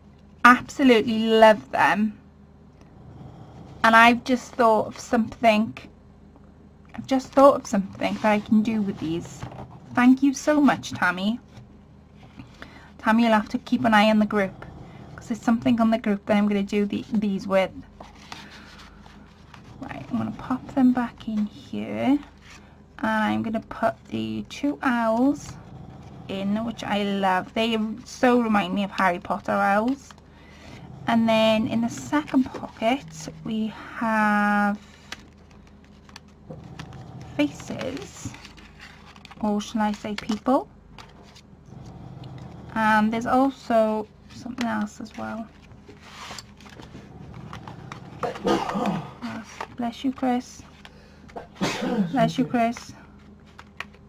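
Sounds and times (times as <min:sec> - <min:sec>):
paper and card rustling: 0:18.0 - 0:22.8, 0:31.7 - 0:41.4, 0:44.2 - 0:48.0, 0:52.3 - 0:54.0
paper cards rustling: 0:34.6 - 0:41.4, 0:52.3 - 0:54.0.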